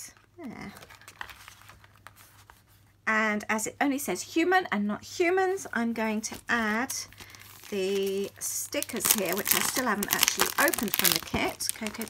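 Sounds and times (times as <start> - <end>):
paper rustling: 0.1 - 2.9, 6.2 - 12.0.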